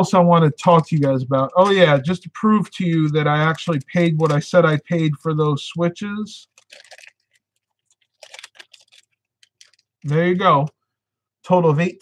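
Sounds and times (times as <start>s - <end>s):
quick clicks and rustles: 6.5s - 10.0s.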